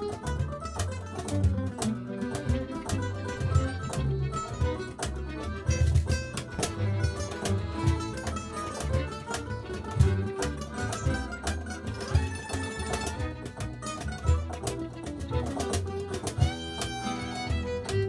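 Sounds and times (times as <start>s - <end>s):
accordion: 0.0s - 18.0s
acoustic guitar: 0.0s - 18.0s
percussive hits: 0.0s - 18.0s
upright double bass: 0.0s - 18.0s
violin: 0.0s - 18.0s.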